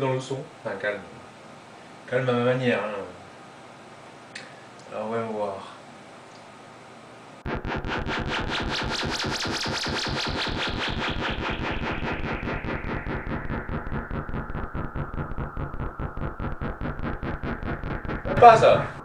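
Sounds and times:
electronic trance music: 7.4 - 19.0
pulsing synth sequence filter sweep: 7.4 - 19.0.

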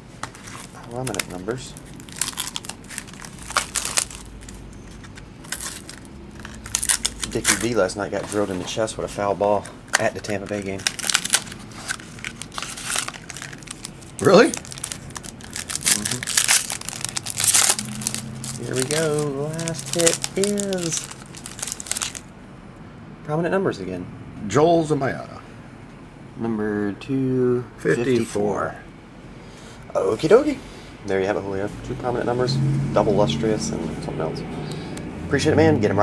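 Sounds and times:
plastic wrapper crinkling: 0.3 - 8.5, 9.6 - 22.3.

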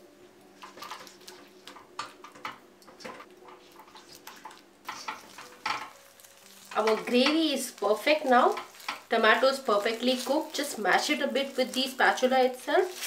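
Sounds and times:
spatula stirring thick gravy: 2.9 - 7.0.

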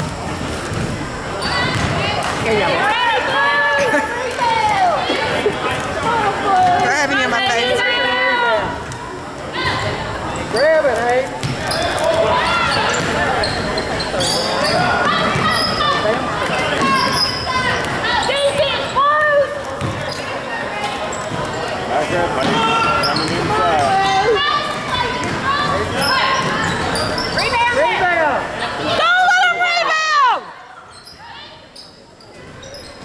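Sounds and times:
scattered voices: 0.0 - 31.8
sneakers squeaking on hardwood: 0.7 - 2.5, 10.4 - 19.1, 22.4 - 27.7, 30.9 - 33.0
basketball dribbling: 1.7 - 2.1, 11.4 - 11.7.

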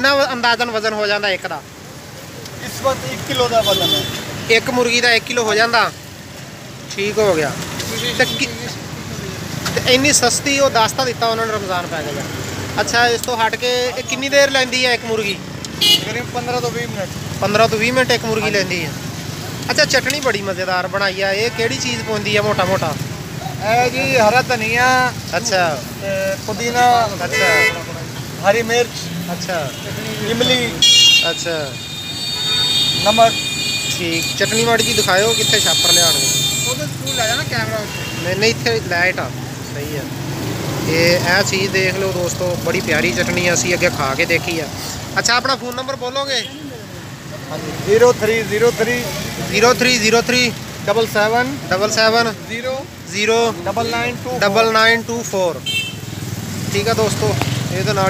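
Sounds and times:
people talking: 0.0 - 1.7, 2.5 - 6.0, 6.9 - 19.0, 19.7 - 31.8, 33.0 - 40.2, 40.8 - 55.7, 56.7 - 58.0
street traffic: 0.0 - 58.0
voices: 0.0 - 58.0
car horn toot: 3.4 - 4.4, 15.8 - 16.2, 27.2 - 28.0, 29.6 - 38.4, 55.6 - 56.0.

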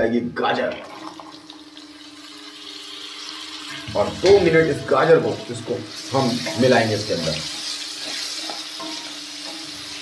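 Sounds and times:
carrots sizzling in hot oil: 0.9 - 10.0.

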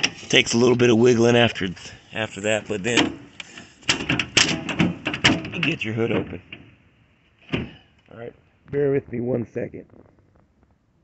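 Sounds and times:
car hood rattling against latch: 2.9 - 6.8.

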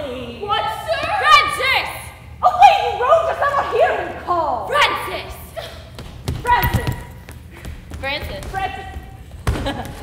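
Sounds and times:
running footsteps on wooden floor: 5.9 - 10.0.

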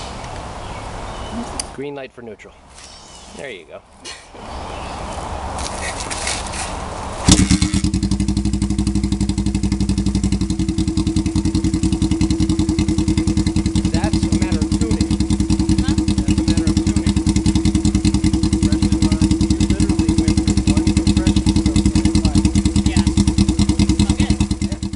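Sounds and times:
motorcycle kick-start: 5.8 - 24.9
motorcycle engine idling: 7.2 - 24.9.

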